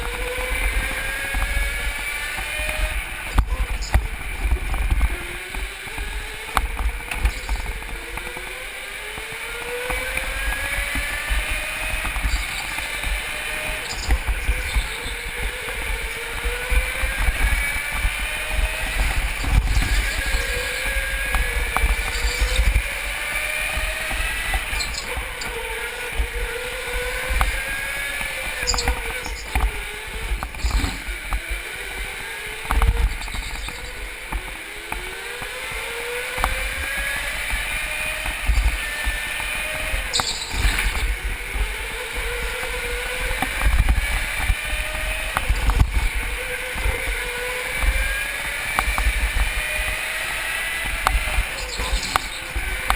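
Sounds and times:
go-kart motor whining: 0.0s - 52.9s.

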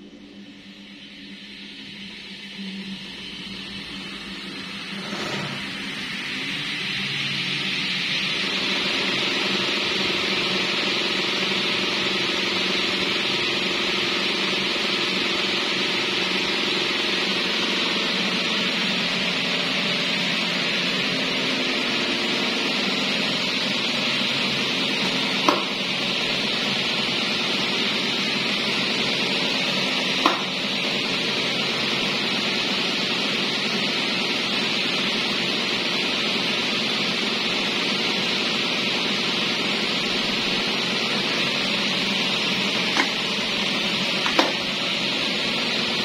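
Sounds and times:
low motor hum: 0.0s - 35.3s
fans rushing air: 0.0s - 46.0s.

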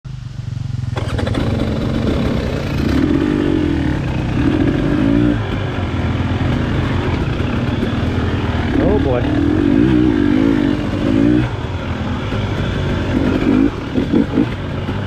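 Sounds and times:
two-stroke dirt bike engine revving: 0.7s - 15.0s.

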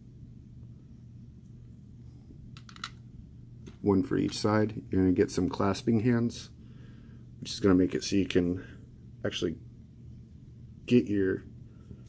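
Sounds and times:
faint low hum: 0.0s - 12.0s
small sharp plastic clicks: 2.6s - 3.0s.

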